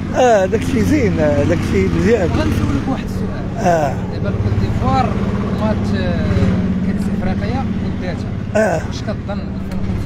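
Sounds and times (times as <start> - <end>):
vehicle engine running: 0.0 - 10.0.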